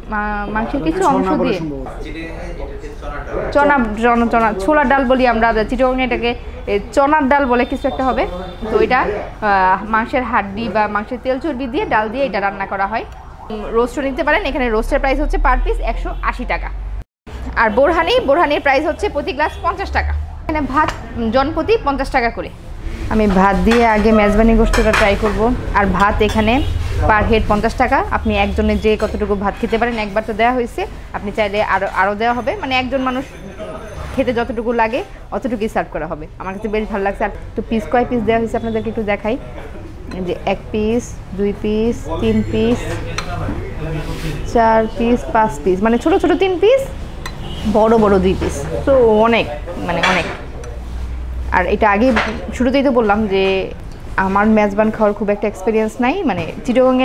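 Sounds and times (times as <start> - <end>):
woman talking: 0.0 - 1.7, 3.5 - 16.8, 17.4 - 33.4, 34.2 - 39.4, 40.1 - 43.0, 44.4 - 47.0, 47.6 - 50.4, 51.5 - 57.0
metal spoon scraping ceramic bowl: 23.2 - 25.4, 26.0 - 27.0
tableware clinking: 23.6 - 25.4, 26.0 - 26.6.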